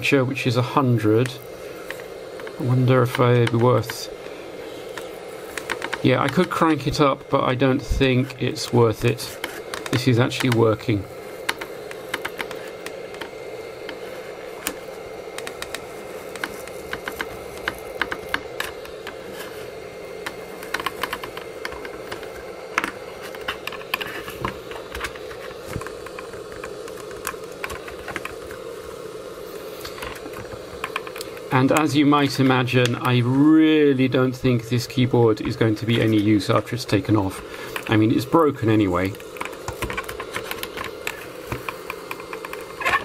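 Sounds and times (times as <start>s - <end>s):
hot air gun blowing: 0.0s - 43.0s
plastic clicking and crackling: 1.2s - 4.3s, 4.9s - 7.0s, 8.6s - 14.0s, 14.6s - 19.2s, 20.2s - 28.6s, 29.8s - 33.1s, 39.0s - 43.0s.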